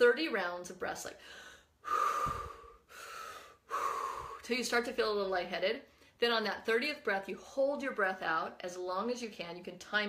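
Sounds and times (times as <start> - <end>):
woman breathing forcefully: 1.2 - 4.5.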